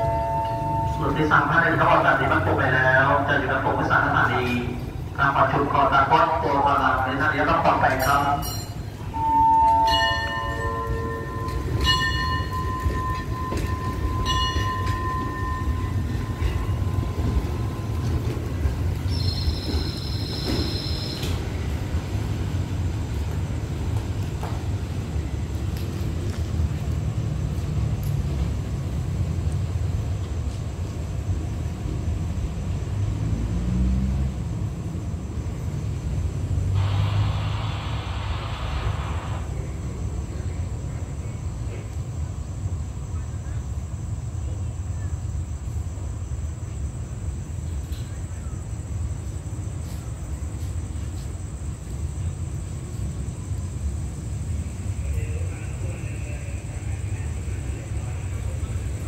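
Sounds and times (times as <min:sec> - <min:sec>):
signal bell ringing: 0:00.0 - 0:01.6, 0:07.9 - 0:17.4
train rumbling: 0:00.0 - 0:59.0
shrill whistle: 0:19.1 - 0:21.3.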